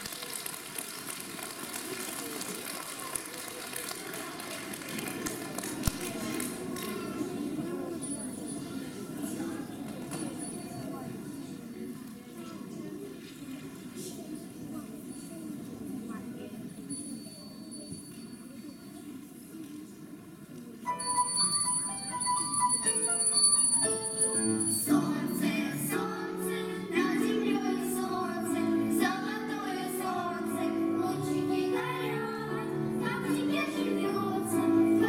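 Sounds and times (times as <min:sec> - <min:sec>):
audience murmur: 0:00.0 - 0:35.0
young children singing: 0:24.4 - 0:35.0.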